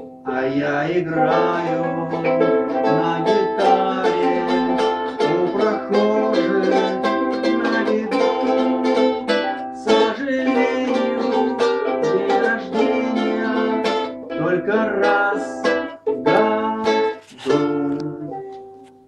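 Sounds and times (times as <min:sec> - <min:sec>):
ukulele strumming chords: 0:00.0 - 0:19.0.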